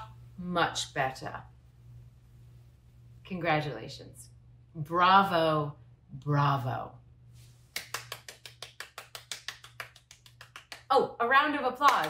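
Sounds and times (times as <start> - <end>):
hands clapping: 7.7 - 10.9.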